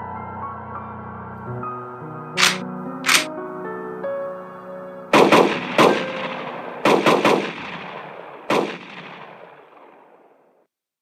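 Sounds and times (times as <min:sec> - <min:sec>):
gunshots with echoing tails: 0:02.4 - 0:03.3, 0:05.1 - 0:10.6.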